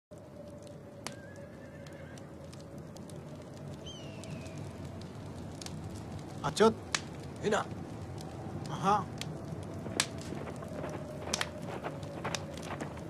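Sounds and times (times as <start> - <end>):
low rumble: 2.5 - 13.0.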